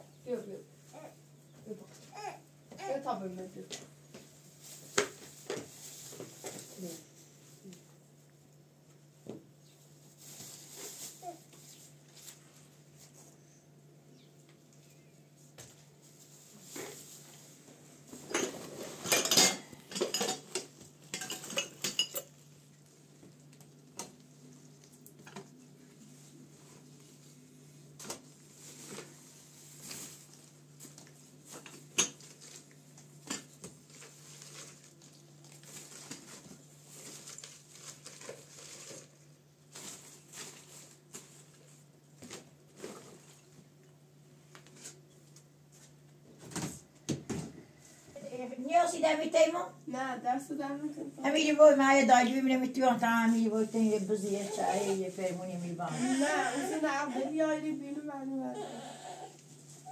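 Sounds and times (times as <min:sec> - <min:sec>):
dishes and containers clattering: 0:18.2 - 0:22.4.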